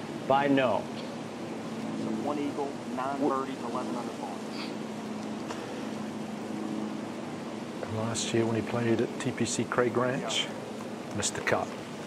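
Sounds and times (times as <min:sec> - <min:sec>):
low mechanical hum: 0:00.0 - 0:12.0
outdoor background noise: 0:00.0 - 0:12.0.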